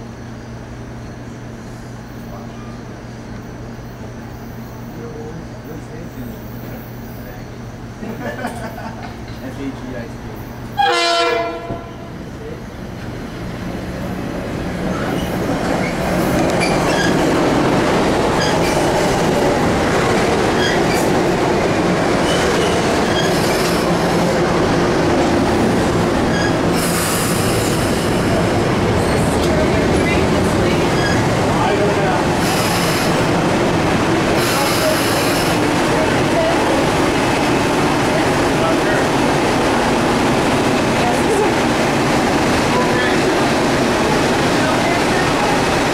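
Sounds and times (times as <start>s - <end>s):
train rumble: 0.0s - 45.9s
train horn blast: 10.7s - 12.1s.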